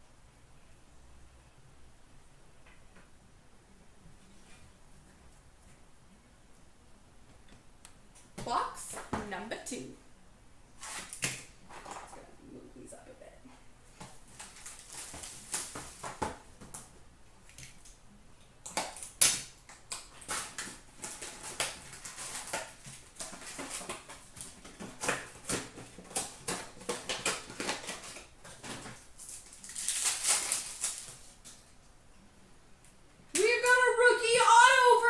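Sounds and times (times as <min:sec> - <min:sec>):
foil wrappers crinkling: 0:13.9 - 0:16.8, 0:18.8 - 0:31.8
wrapper tearing: 0:14.2 - 0:16.2, 0:18.6 - 0:31.7.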